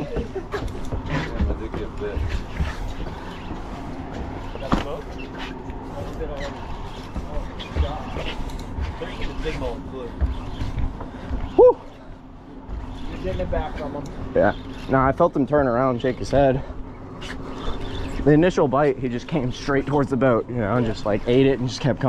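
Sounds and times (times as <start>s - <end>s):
boat machinery hum: 0.0s - 22.0s.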